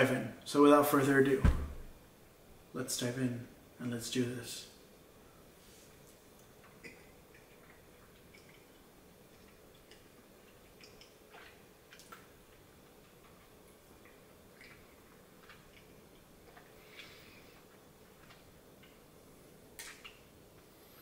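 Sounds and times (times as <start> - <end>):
faint room hum: 0.0 - 21.0.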